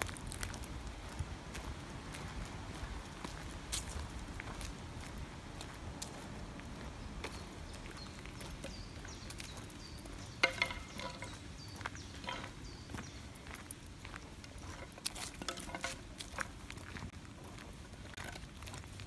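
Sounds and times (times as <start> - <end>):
stick clicking and scraping on asphalt: 8.0 - 19.0.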